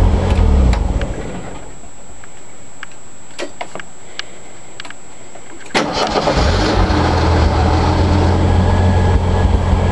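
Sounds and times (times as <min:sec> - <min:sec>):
car engine starting and idling roughly: 0:05.7 - 0:09.9.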